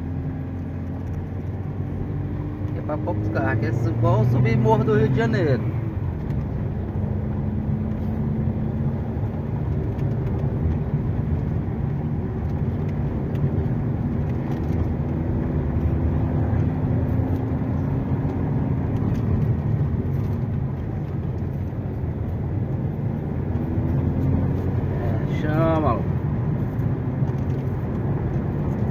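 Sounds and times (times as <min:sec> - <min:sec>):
car engine from inside cabin: 0:00.0 - 0:28.9
road noise: 0:00.0 - 0:28.9.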